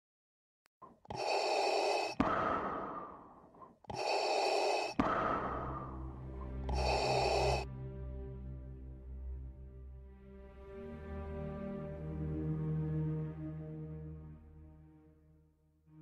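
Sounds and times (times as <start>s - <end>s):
heavy breaths: 0.9s - 7.6s
low droning music: 5.1s - 16.0s.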